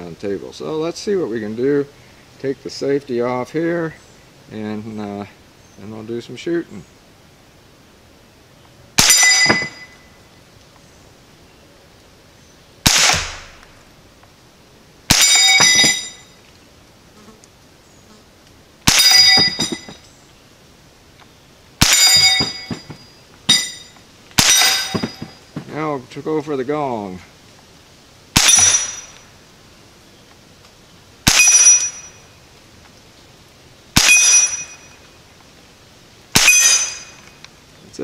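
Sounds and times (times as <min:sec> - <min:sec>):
metal target ringing clang: 0:09.0 - 0:10.0, 0:15.1 - 0:16.3, 0:18.9 - 0:20.0, 0:21.8 - 0:25.5, 0:28.4 - 0:29.2, 0:31.3 - 0:32.3, 0:34.0 - 0:35.0, 0:36.4 - 0:37.4
quiet rifle shots: 0:12.8 - 0:13.8, 0:15.1 - 0:16.3, 0:21.8 - 0:23.7, 0:24.3 - 0:25.8, 0:28.3 - 0:29.3, 0:31.2 - 0:32.2, 0:34.0 - 0:35.0, 0:36.3 - 0:37.4.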